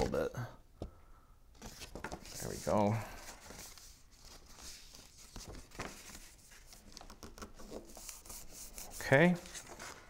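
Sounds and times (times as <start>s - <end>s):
hands rubbing on cardstock: 3.5s - 9.8s.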